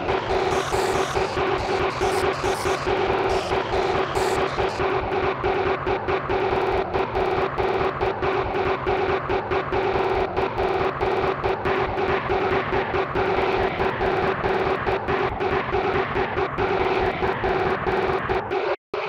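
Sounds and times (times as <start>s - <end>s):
chopped droning tone: 0.0s - 18.6s
distorted remix music: 0.0s - 19.0s.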